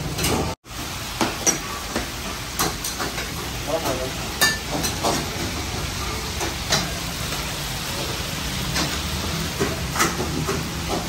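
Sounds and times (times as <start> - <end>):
food sizzling in woks: 0.0 - 11.0
gas burners roaring: 0.0 - 11.0
metal utensils clanking on woks: 0.0 - 11.0.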